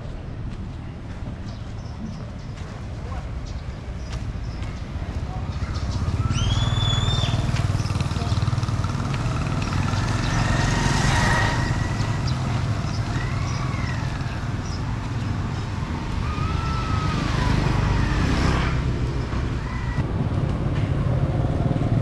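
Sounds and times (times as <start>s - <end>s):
traffic low rumble: 0.0s - 22.0s
motorbikes passing: 1.4s - 22.0s.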